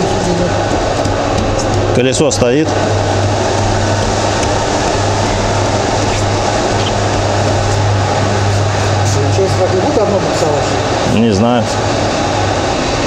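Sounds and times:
low drone: 0:00.0 - 0:13.0
workshop equipment humming: 0:00.0 - 0:13.0.

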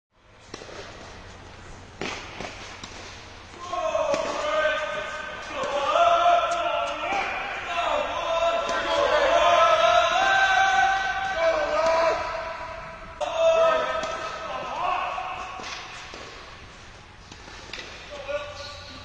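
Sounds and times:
racket striking ball: 0:00.4 - 0:01.2, 0:01.9 - 0:07.6, 0:11.0 - 0:18.1
tennis ball bouncing: 0:01.9 - 0:07.4, 0:13.8 - 0:18.1.

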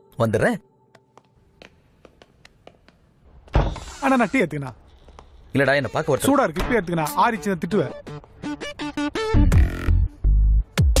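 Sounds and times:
door banging open: 0:03.5 - 0:04.0.

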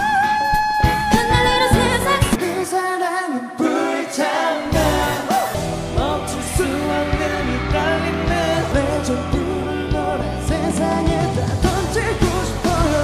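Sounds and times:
pop backing track: 0:00.0 - 0:13.0
woman singing: 0:00.1 - 0:03.6, 0:04.6 - 0:13.0
man singing: 0:02.4 - 0:13.0.

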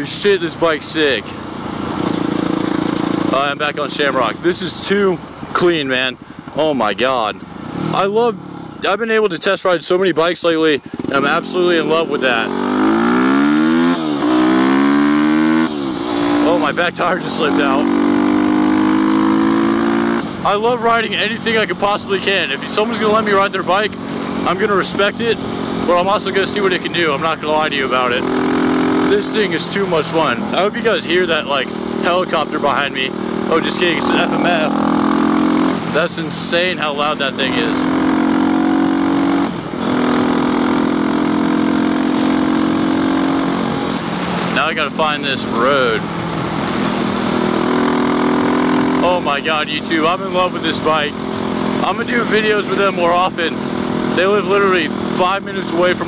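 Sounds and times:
motorcycle engine accelerating: 0:00.0 - 0:09.0, 0:10.8 - 0:56.0.

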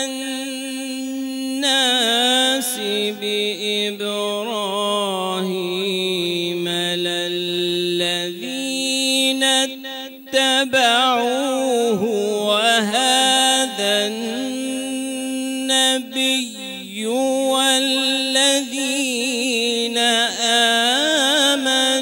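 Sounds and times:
man reciting melodically: 0:00.0 - 0:22.0.

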